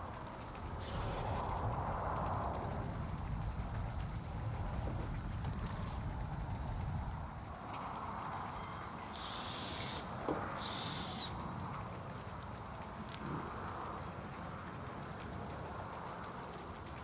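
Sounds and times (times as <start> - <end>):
wind rumbling on microphone: 0.0 - 17.0.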